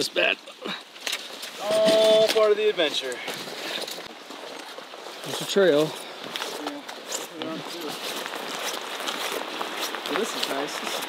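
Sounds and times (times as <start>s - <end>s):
brush and dry grass rustling: 0.0s - 11.0s
footsteps through undergrowth: 0.9s - 11.0s.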